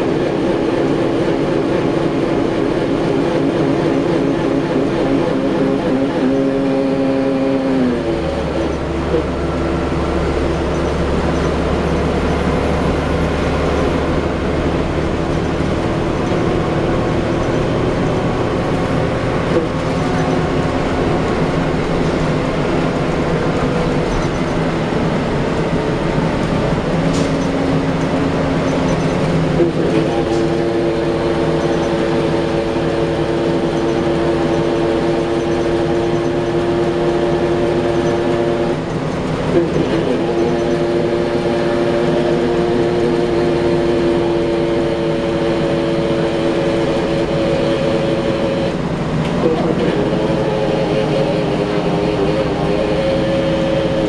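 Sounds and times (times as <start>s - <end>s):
bus engine drone inside cabin: 0.0s - 54.0s.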